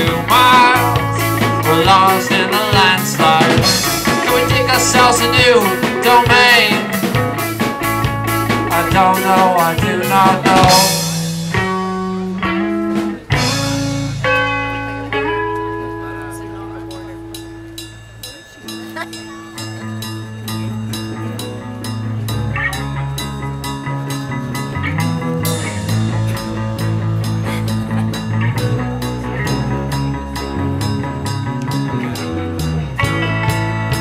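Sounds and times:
drum beat: 0.0s - 15.3s
electric guitar: 0.0s - 17.8s, 19.8s - 34.0s
electric bass line: 0.0s - 18.0s, 19.7s - 34.0s.

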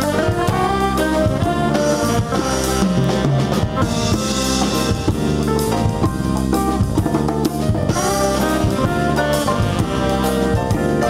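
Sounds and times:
horns playing held melodic lines: 0.0s - 7.1s, 7.8s - 11.0s
jazz ensemble playing: 0.0s - 11.0s
steady drumming: 0.0s - 11.0s.

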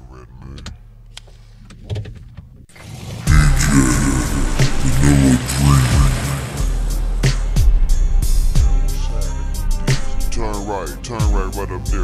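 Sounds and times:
low engine hum: 2.6s - 11.0s.

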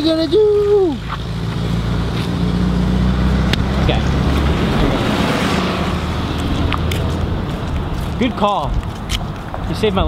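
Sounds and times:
car passing: 0.0s - 10.0s
vehicle engine rumble: 0.0s - 10.0s.

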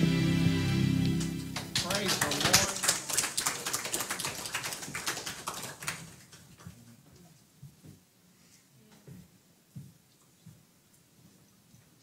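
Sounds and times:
congregation applauding: 0.8s - 6.8s.

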